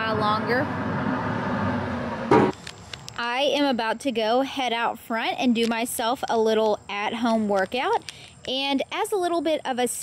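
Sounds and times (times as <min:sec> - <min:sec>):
background noise rush: 0:00.0 - 0:03.2.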